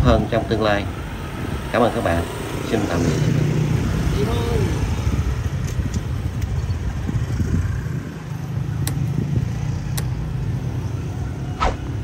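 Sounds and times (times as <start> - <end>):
motor scooter engines rumbling: 0.0 - 12.0
sharp clicks: 9.9 - 10.2.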